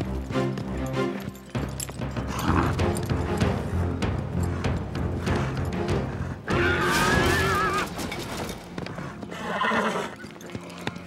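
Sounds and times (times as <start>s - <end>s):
background music: 0.0s - 11.0s
horse whinnying: 2.3s - 3.0s, 6.5s - 8.1s, 9.3s - 11.0s.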